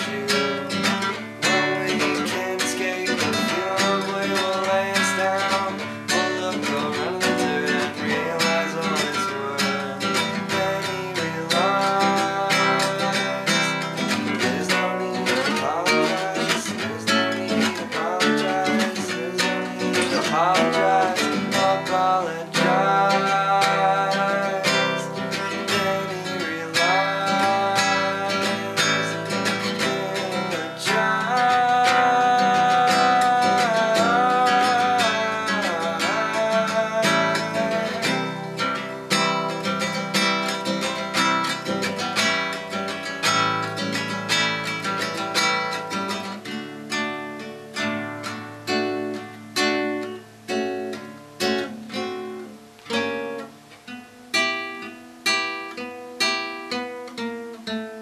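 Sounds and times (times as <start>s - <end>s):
acoustic guitar strumming: 0.0s - 58.0s.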